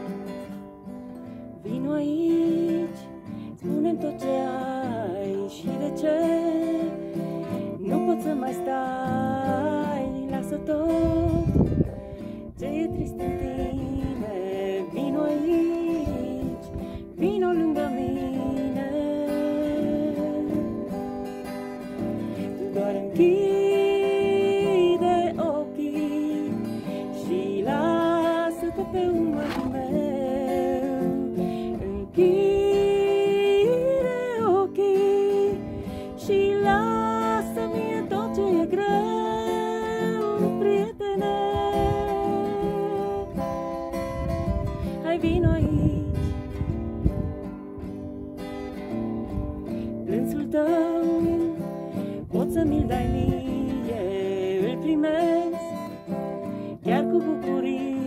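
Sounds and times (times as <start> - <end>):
woman singing: 0.0 - 47.5, 49.6 - 58.0
acoustic guitar strumming: 0.0 - 58.0.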